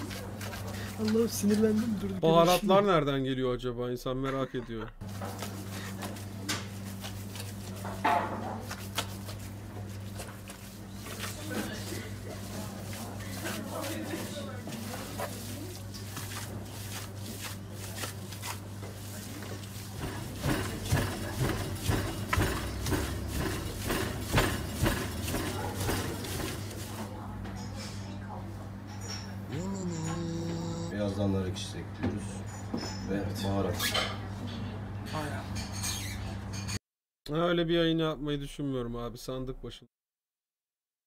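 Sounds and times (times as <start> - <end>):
steady low hum: 29.5 - 32.4.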